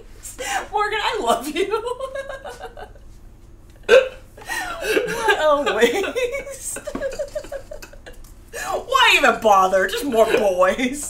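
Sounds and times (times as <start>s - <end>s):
woman laughing: 1.2s - 3.1s, 3.8s - 8.8s.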